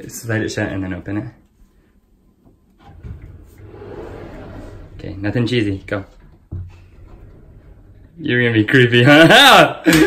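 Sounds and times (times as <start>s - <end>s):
sliding door rumbling on track: 2.8s - 9.4s.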